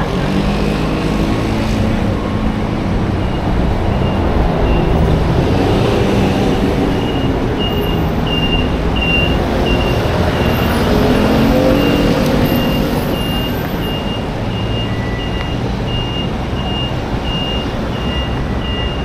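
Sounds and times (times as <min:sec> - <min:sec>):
engine rising in pitch: 0:00.0 - 0:19.0
vehicles passing: 0:00.0 - 0:19.0
high electronic beep: 0:06.9 - 0:19.0.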